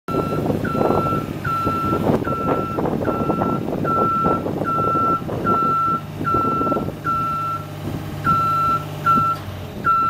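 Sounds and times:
lift engine running: 0.1s - 10.0s.

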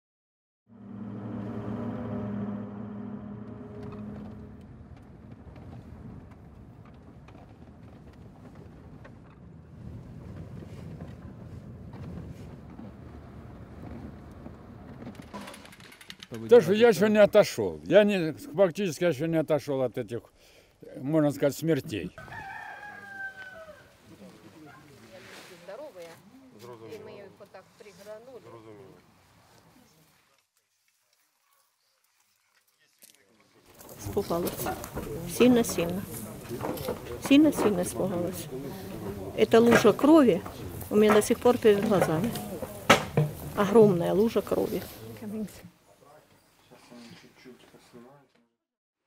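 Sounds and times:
car engine and road hum: 0.7s - 6.0s
small rattles and knocks: 13.8s - 16.6s, 39.4s - 43.9s
rooster crowing: 22.2s - 24.0s.

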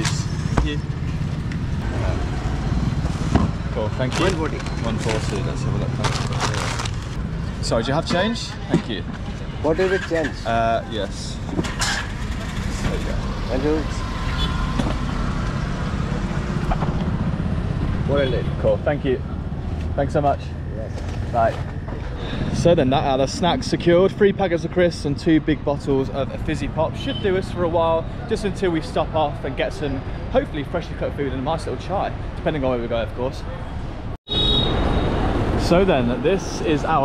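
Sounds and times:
road traffic rumble: 0.0s - 37.0s.

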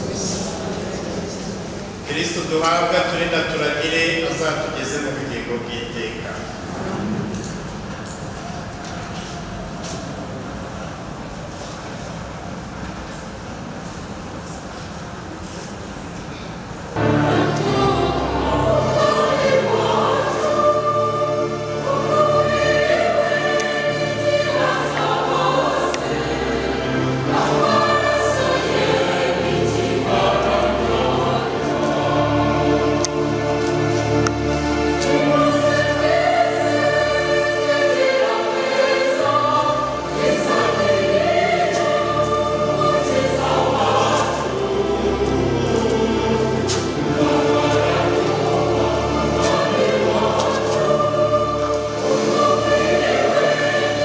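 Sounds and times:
church choir singing a hymn: 0.0s - 12.7s, 16.6s - 54.0s
low accompaniment: 0.0s - 54.0s.

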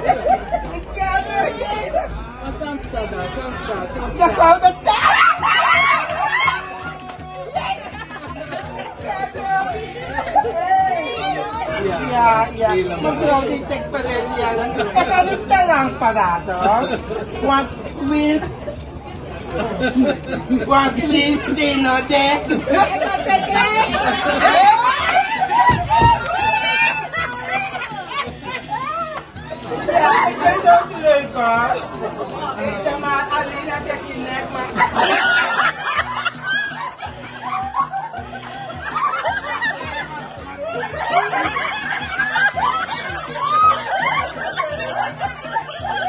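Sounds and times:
people chattering: 0.0s - 46.0s
people laughing: 0.0s - 46.0s
people talking over each other: 0.0s - 46.0s.

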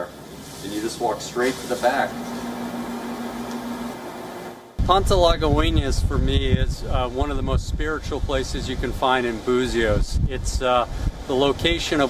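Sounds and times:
man speaking outdoors: 0.0s - 2.2s, 4.8s - 12.0s
room tone hiss: 0.0s - 5.2s.

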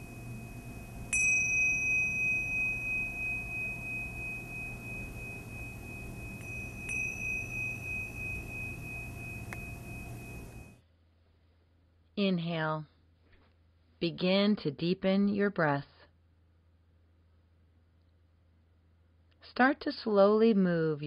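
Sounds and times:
small cymbals ringing: 0.0s - 10.8s.

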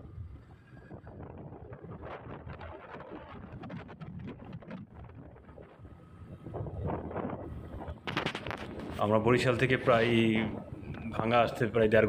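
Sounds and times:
vehicle road noise: 0.0s - 12.0s
wind buffeting microphone: 0.0s - 12.0s.

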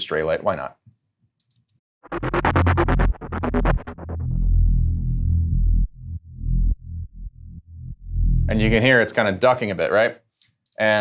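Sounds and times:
bright synth pulsing: 2.0s - 8.8s
deep synth sub bass: 2.0s - 8.9s.

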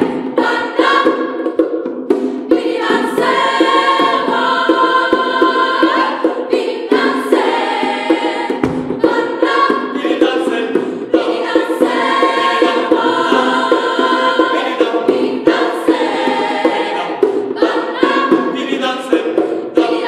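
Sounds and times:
hand drum strikes: 0.0s - 20.0s
mixed choir singing: 0.0s - 20.0s.

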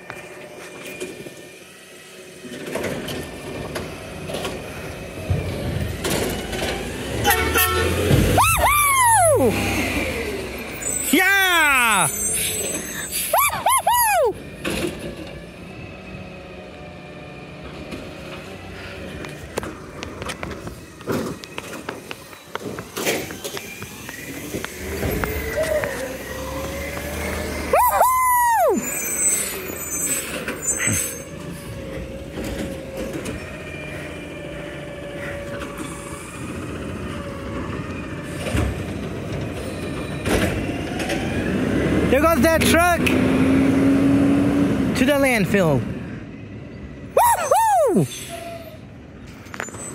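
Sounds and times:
garbage truck engine: 0.0s - 49.9s
air brake hissing: 12.1s - 13.5s
hydraulic whine: 14.3s - 27.8s.

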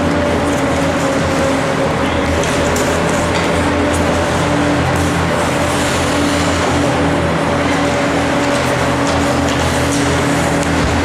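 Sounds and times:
hockey play noise: 0.0s - 11.0s
mechanical hum: 0.0s - 11.0s
sticks and skates clacking on ice: 2.1s - 4.2s, 7.6s - 11.0s.

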